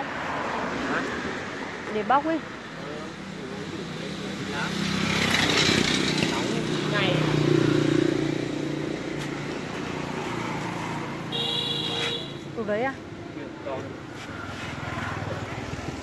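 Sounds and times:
people talking: 1.9 - 4.8, 12.0 - 13.0.

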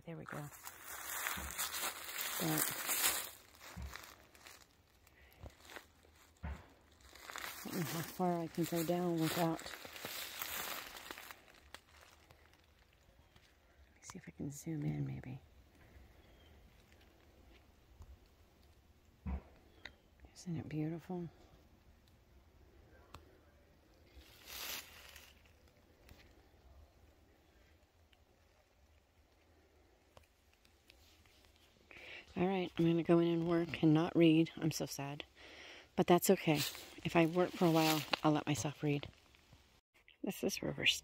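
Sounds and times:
footsteps through leaf litter: 0.3 - 12.6, 24.1 - 25.7, 36.5 - 39.0.

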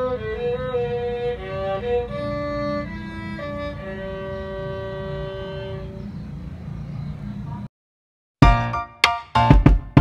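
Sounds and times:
violin holding long note: 0.0 - 6.0.

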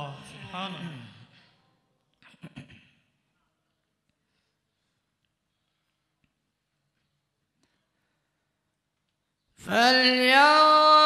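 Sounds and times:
man reciting: 9.6 - 11.0.

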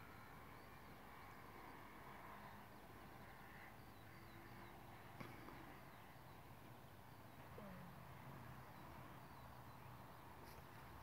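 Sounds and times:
distant birds chirping: 0.0 - 11.0.

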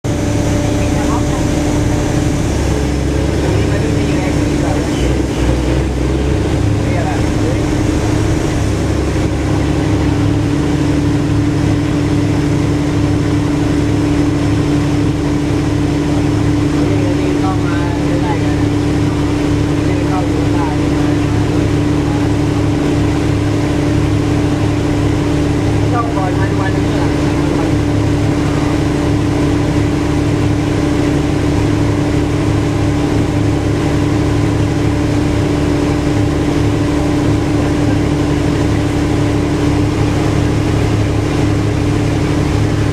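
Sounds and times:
boat engine droning: 0.0 - 42.9.

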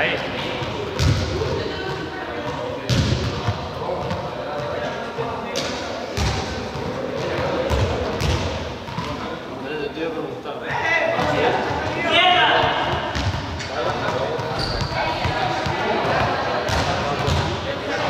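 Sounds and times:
background chatter: 0.0 - 18.0.

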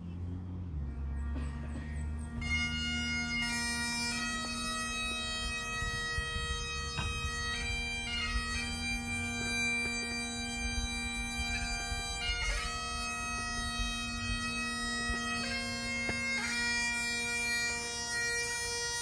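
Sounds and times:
bagpipe drone: 0.0 - 19.0
bagpipe melody: 0.0 - 19.0.

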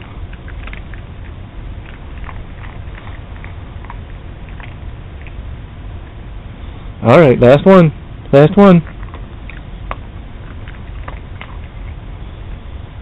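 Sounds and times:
dog chewing biscuit: 0.0 - 5.5, 8.8 - 12.1
steady low hum: 0.0 - 13.0.

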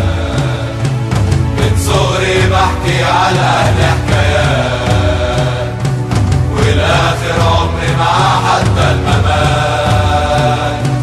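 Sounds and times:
crowd chanting: 0.0 - 11.0
fast drum beat: 0.0 - 11.0.

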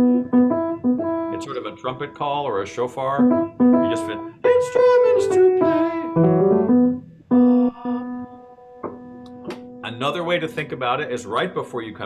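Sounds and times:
piano note ringing: 0.0 - 10.6.

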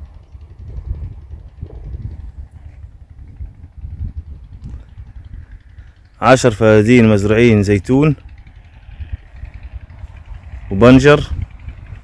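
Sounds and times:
vehicle rolling on dirt track: 0.0 - 12.0.

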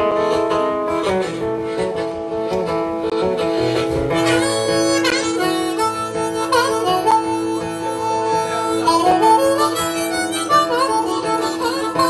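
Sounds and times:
harmonica solo: 0.0 - 12.0
strummed acoustic guitar: 0.0 - 12.0.

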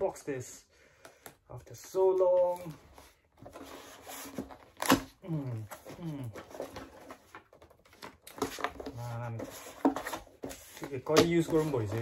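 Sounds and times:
cardboard and paper rustling: 1.8 - 12.0
man humming: 5.2 - 6.4.

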